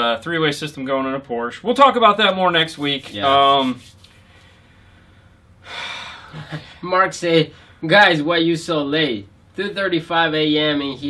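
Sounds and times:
man speaking: 0.0s - 3.8s
man breathing: 4.2s - 6.8s, 7.5s - 7.8s.

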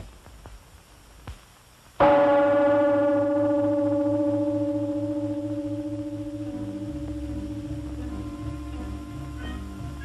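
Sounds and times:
large gong ringing: 2.0s - 10.0s
low throb: 2.0s - 10.0s.

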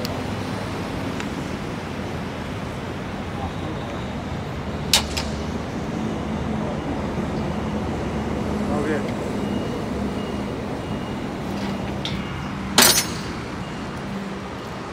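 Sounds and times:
low traffic rumble: 0.0s - 14.9s.

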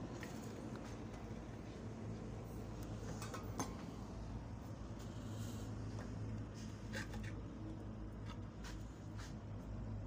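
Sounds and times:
steady low hum: 0.0s - 10.0s
light scrapes and clicks: 5.0s - 7.5s.

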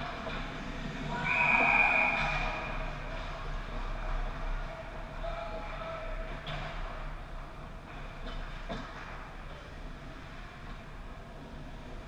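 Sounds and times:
ice rink hum: 0.0s - 12.0s.

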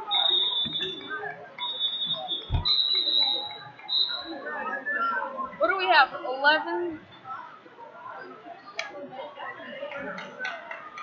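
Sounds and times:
crowd chatter: 0.0s - 11.0s
referee whistle blasts: 0.1s - 4.4s
dull thump: 2.5s - 2.8s.

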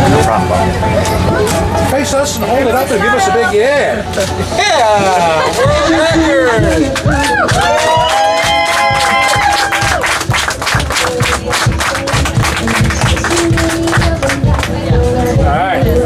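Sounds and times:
music: 0.0s - 16.0s
crowd cheering: 5.2s - 13.9s
dense clapping: 6.5s - 14.8s.

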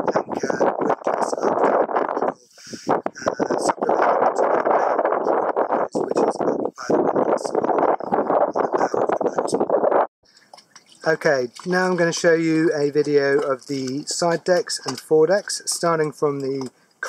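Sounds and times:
wind buffeting microphone: 0.0s - 10.1s.

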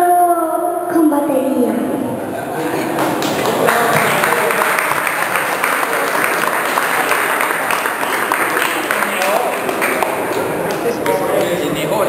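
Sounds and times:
voices: 0.0s - 12.0s
audience applauding: 2.6s - 12.0s.

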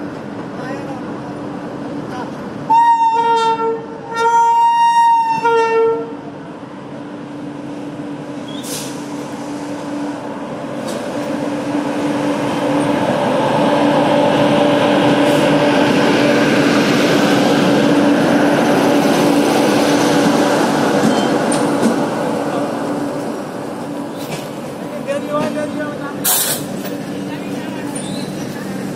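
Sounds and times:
train running past: 0.0s - 28.9s
train horn: 2.7s - 6.2s.

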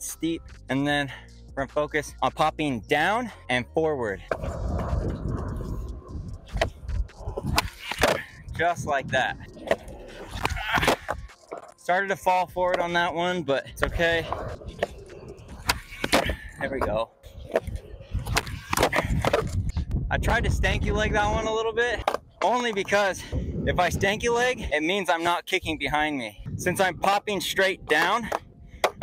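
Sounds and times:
skateboard wheels rolling on concrete: 4.1s - 23.2s
skateboard tail popping: 4.3s - 8.4s, 9.4s - 11.8s, 14.3s - 16.4s
skateboard clacking on concrete: 6.5s - 8.3s, 13.8s - 19.6s, 27.9s - 29.0s.

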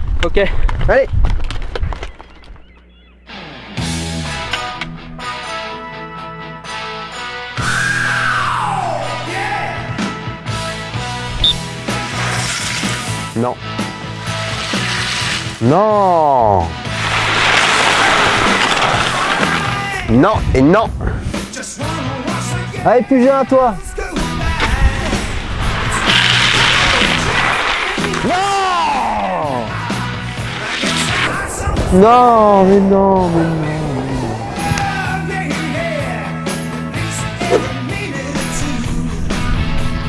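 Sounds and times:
background music: 2.8s - 20.4s, 21.3s - 40.0s
long wordless yell: 7.7s - 10.1s, 28.2s - 29.9s, 31.4s - 36.3s
plastic whistle blast: 11.4s - 11.6s
skis scraping over gravel: 11.8s - 15.7s, 16.8s - 20.1s, 24.5s - 29.0s, 29.7s - 31.8s.

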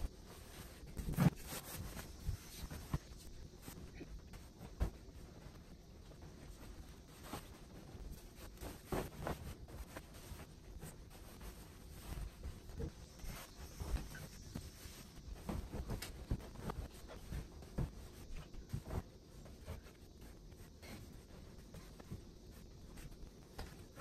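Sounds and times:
bedding rustling: 0.0s - 24.0s
sheet flapping: 0.0s - 24.0s.

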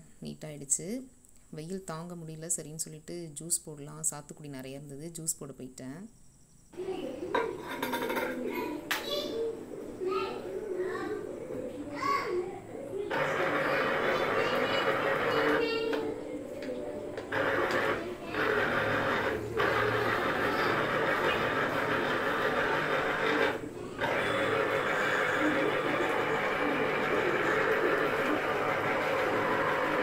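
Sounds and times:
electric juicer motor running: 13.1s - 16.2s, 17.2s - 30.0s.

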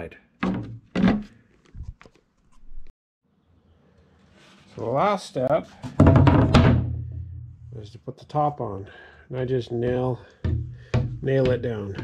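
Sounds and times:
wooden boards knocking on crate: 5.9s - 7.0s.

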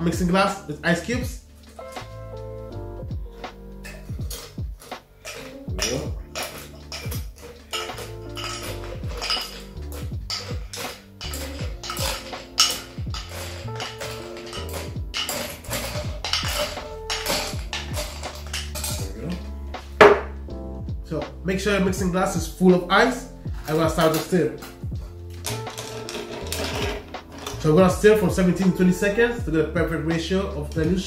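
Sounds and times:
background music: 0.0s - 31.0s
ice cubes clinking into glass: 3.8s - 19.1s, 25.4s - 27.7s.

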